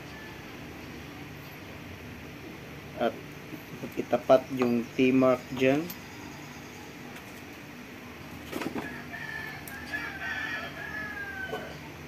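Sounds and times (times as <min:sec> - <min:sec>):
rooster crowing: 0:00.0 - 0:00.8, 0:08.7 - 0:12.0.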